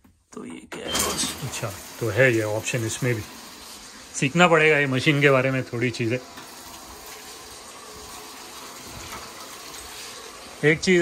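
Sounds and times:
water pouring into washing machine: 0.8 - 11.0.

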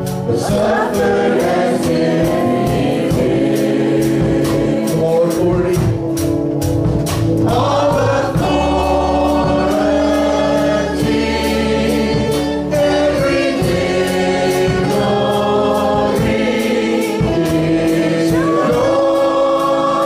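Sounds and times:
worship band and congregation singing: 0.0 - 20.0.

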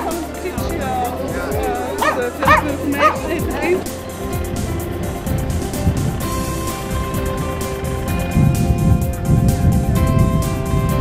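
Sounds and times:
background music with low beat: 0.0 - 11.0
dog barking and yipping: 2.0 - 3.6.

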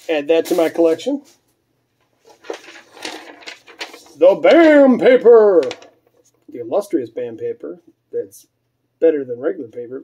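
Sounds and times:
packing paper rustling: 2.2 - 6.4.

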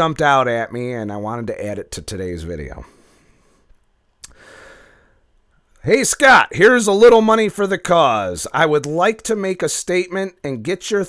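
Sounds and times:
man speaking: 0.0 - 2.9, 5.8 - 11.0
mouth click: 4.2 - 4.4
man breathing into microphone: 4.3 - 5.2.

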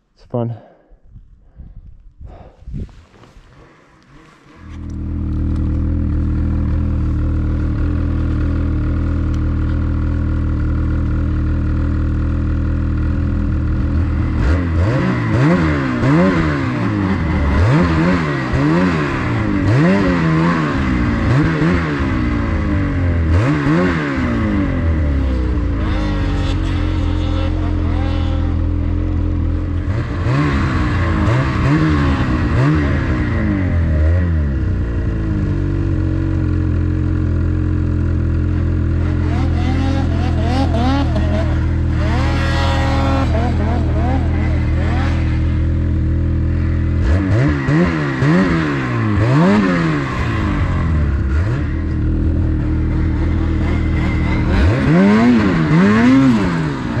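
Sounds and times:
snowmobile engine revving: 2.8 - 57.0.

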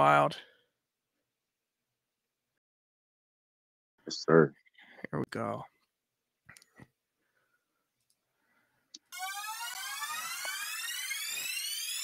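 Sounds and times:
synthesized rising sweep: 9.1 - 12.0.

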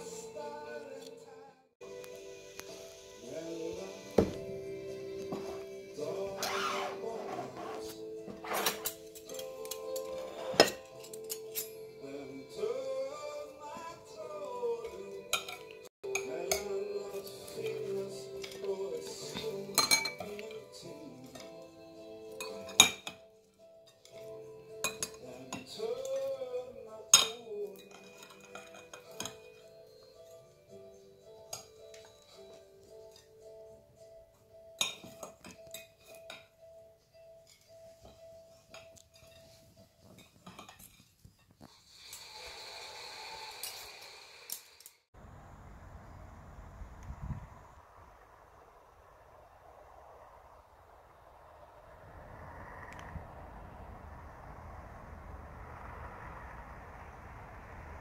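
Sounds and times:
background music with held notes: 0.0 - 41.0
cutlery clinking on a plate: 8.6 - 11.8, 19.4 - 20.6, 22.4 - 23.2, 27.2 - 29.6, 34.8 - 36.5, 37.5 - 41.6
low outdoor rumble: 45.2 - 58.0
steady rushing noise: 45.2 - 58.0.

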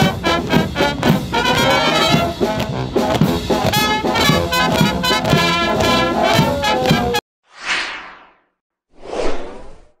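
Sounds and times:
whoosh sound effect: 7.5 - 10.0.

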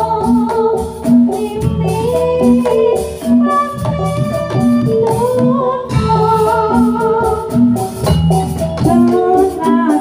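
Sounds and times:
person singing: 0.0 - 7.8, 8.8 - 10.0
gamelan music: 0.0 - 10.0.

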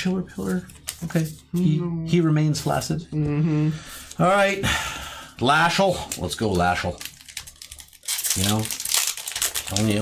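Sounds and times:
foil wrapper crinkling and tearing: 6.0 - 10.0.

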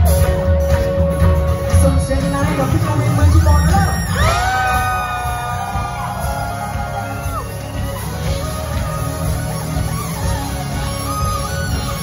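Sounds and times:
pop-rock band playing: 0.0 - 12.0.

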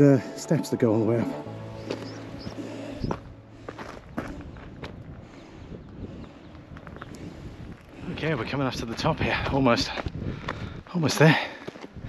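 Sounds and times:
low rumbling noise: 1.4 - 10.9
footsteps on stony trail: 1.8 - 12.0.

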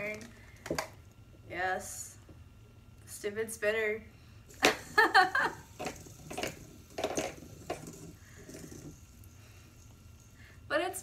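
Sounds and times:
fidget spinner clicks and knocks: 4.5 - 9.4
fidget spinner whirring: 4.5 - 11.0.

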